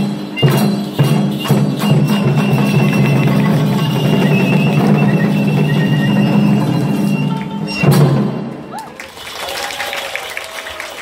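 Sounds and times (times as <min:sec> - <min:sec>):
fan drums beaten rapidly: 0:00.0 - 0:08.7
bamboo flute high note: 0:01.8 - 0:08.0.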